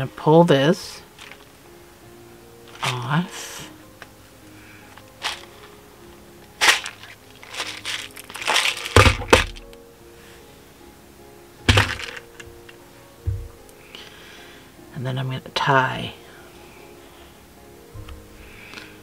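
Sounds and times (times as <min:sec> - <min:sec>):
plastic case knocks and scrapes: 0:08.9 - 0:09.6, 0:11.7 - 0:12.2, 0:13.3 - 0:13.6.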